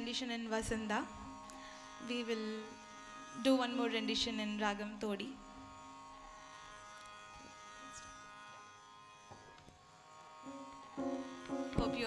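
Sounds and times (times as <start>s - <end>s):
faint drone of held tones: 10.4s - 12.0s
low note: 10.5s - 12.0s
soft knocks: 11.5s - 12.0s.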